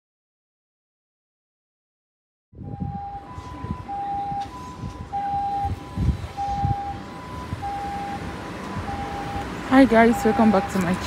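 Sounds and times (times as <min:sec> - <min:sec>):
low street traffic rumble: 0:02.6 - 0:11.0
two-tone siren: 0:02.6 - 0:11.0.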